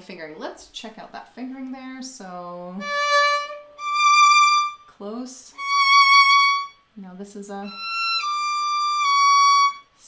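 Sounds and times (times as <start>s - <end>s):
violin playing slow high notes: 2.8s - 4.8s, 5.6s - 6.8s, 7.7s - 9.9s.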